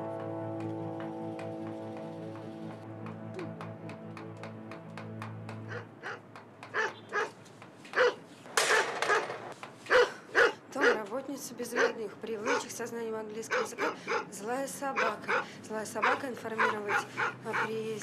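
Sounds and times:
background music with held tones: 0.0s - 6.1s
dog barking: 5.7s - 7.4s, 8.0s - 8.2s, 9.9s - 11.0s, 11.8s - 12.7s, 13.5s - 14.3s, 15.0s - 15.4s, 16.0s - 17.7s.

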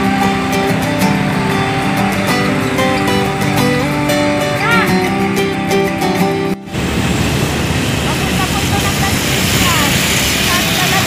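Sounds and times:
faint voices: 0.0s - 5.2s, 7.9s - 11.0s
scooter engine running: 0.0s - 5.4s, 6.7s - 11.0s
road noise: 0.0s - 11.0s
wind rush: 6.6s - 11.0s.

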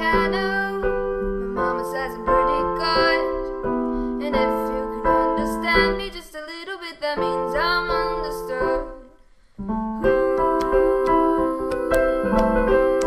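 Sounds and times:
piano playing slow chords: 0.0s - 6.1s, 9.6s - 13.0s
woman singing wordless line: 0.0s - 9.2s, 10.0s - 13.0s.

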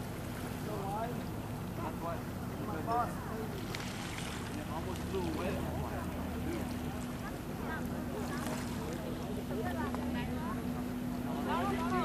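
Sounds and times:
boat motor humming: 0.0s - 12.0s
people's voices: 4.5s - 12.0s.

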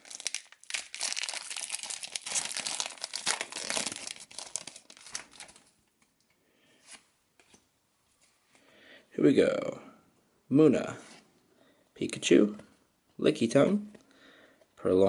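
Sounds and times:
foil wrapper tearing and crinkling: 0.0s - 5.6s.

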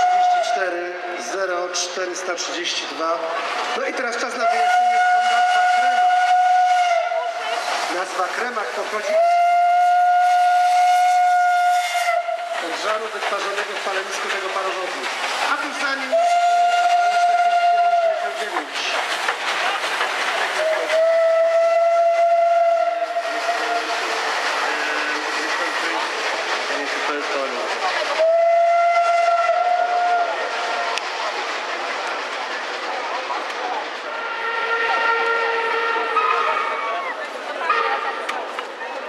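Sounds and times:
steam locomotive whistle blasts: 0.0s - 0.6s, 4.4s - 7.5s, 9.1s - 12.5s, 16.1s - 18.2s, 20.6s - 24.0s, 28.2s - 30.4s, 34.1s - 36.9s
steam locomotives working: 0.0s - 39.0s.

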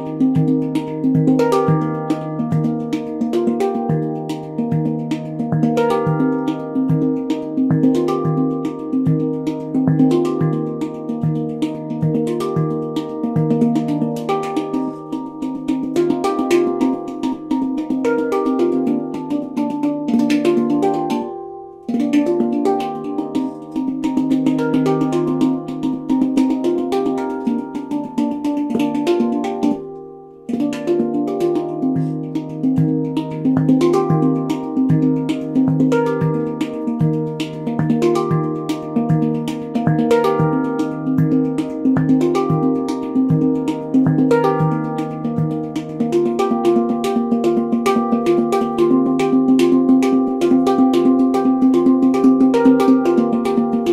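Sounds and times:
handpan played by hand: 0.0s - 53.9s.

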